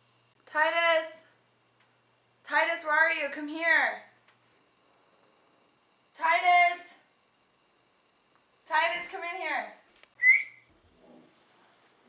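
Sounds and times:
person whistling: 10.2s - 10.7s.

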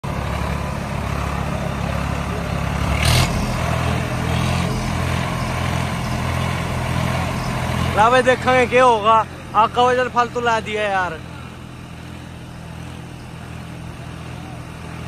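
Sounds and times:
tractor diesel engine running: 0.0s - 15.0s.

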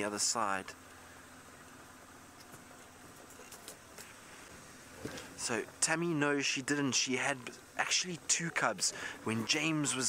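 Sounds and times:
vehicle engine running slowly: 0.0s - 10.0s.

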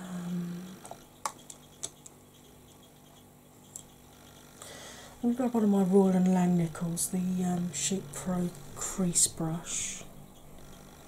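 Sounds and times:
woman humming: 0.0s - 0.9s.

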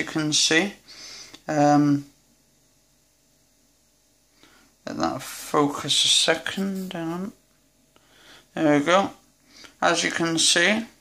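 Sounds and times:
person speaking: 0.0s - 2.2s, 4.8s - 7.5s, 8.5s - 11.0s
faint steady hiss: 0.0s - 11.0s.

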